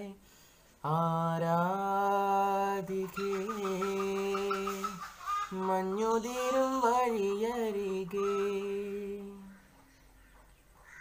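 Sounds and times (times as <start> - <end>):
man singing with warbling ornaments: 0.0 - 9.8.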